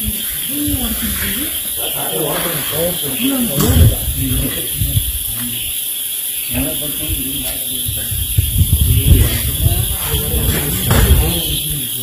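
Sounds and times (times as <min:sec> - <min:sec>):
steady background hiss: 0:00.0 - 0:12.0
onlookers talking and exclaiming: 0:09.0 - 0:11.9.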